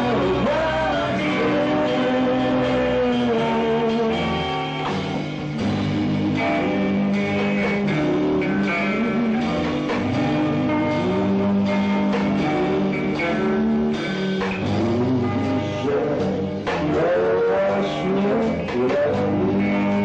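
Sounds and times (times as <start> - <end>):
drums: 0.0 - 20.0
electric guitars: 0.0 - 20.0.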